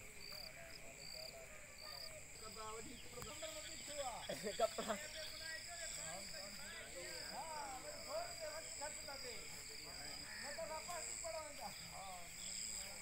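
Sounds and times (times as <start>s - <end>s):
distant voices and calls: 0.0s - 13.0s.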